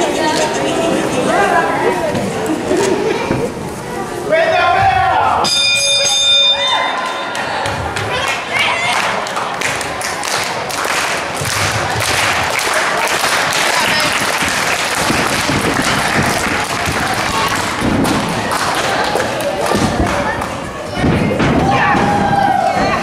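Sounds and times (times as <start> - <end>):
crowd chatter and shouts: 0.0 - 23.0.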